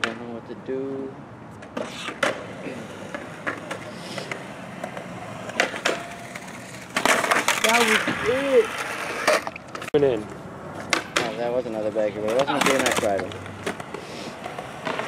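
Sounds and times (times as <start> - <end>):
skateboard wheels rolling: 1.5 - 15.0
skateboard clacks and knocks: 1.6 - 9.9, 10.8 - 11.5, 12.2 - 15.0
skateboard rough scraping: 1.7 - 9.9, 12.2 - 15.0.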